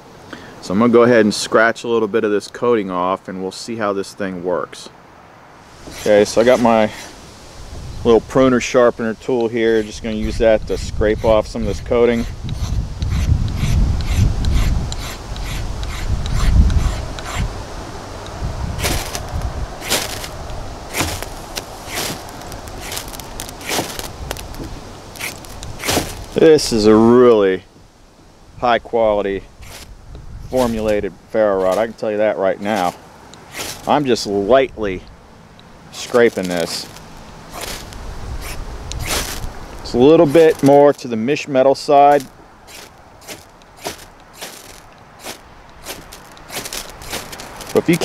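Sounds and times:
metal scraping ferro rod: 5.8s - 7.2s, 29.6s - 29.9s.

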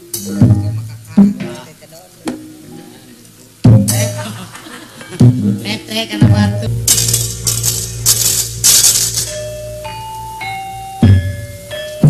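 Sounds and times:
low ringing ensemble tone: 6.0s - 12.0s
sharp metallic plate clashes: 6.7s - 10.1s.

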